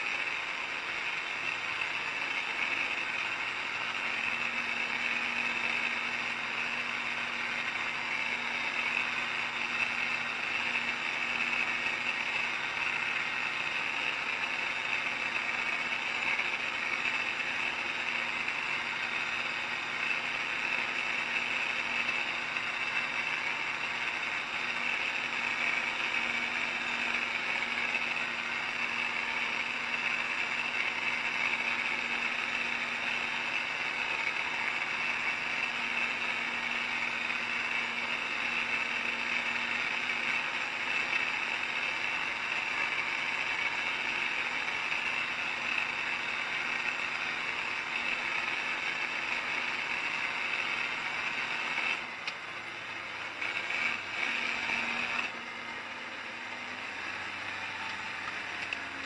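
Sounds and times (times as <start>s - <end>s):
engine and drivetrain drone: 0.0s - 59.0s.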